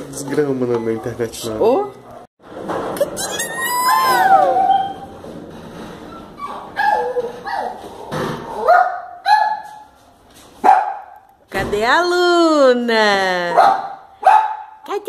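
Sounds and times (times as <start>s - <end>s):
dog whining: 3.0s - 5.1s, 6.1s - 7.8s
dog yipping: 3.0s - 5.1s, 6.2s - 7.8s, 8.6s - 9.8s, 10.6s - 11.2s.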